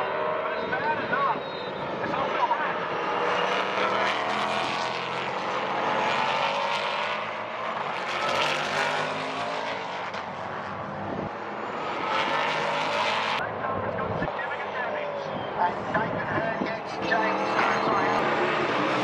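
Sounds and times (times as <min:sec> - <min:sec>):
race car engines passing: 0:00.0 - 0:19.0.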